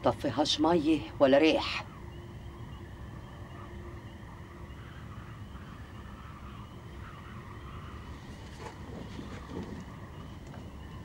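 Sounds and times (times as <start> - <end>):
chorus of small chirps: 0.1 - 11.0.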